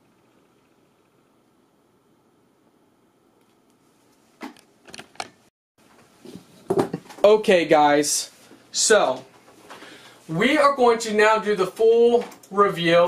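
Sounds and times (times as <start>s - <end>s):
faint room hum: 0.0s - 13.0s.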